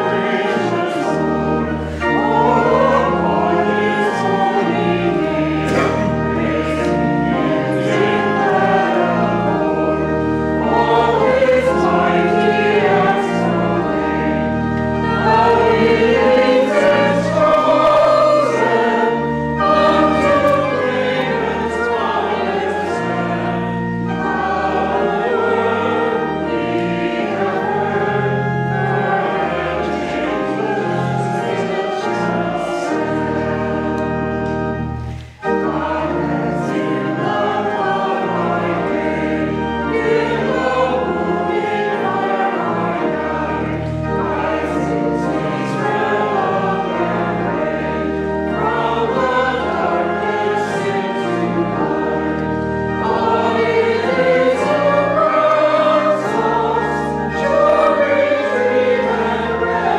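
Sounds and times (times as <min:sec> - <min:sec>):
congregation singing a hymn: 0:00.0 - 0:59.9
pipe organ sustained chords: 0:00.0 - 0:59.9.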